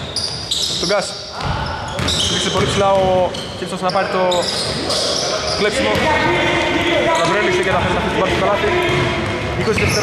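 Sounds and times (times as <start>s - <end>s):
sneakers squeaking: 0.0s - 10.0s
voices in echoing hall: 0.0s - 10.0s
basketball bouncing: 0.1s - 3.3s, 5.8s - 6.4s.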